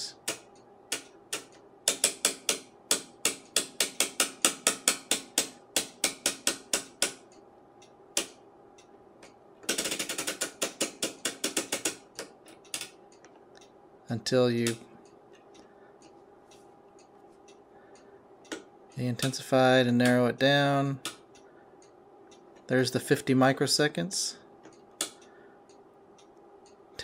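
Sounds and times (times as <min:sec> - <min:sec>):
rotary switch clicking: 0:00.2 - 0:13.8, 0:24.6 - 0:26.8.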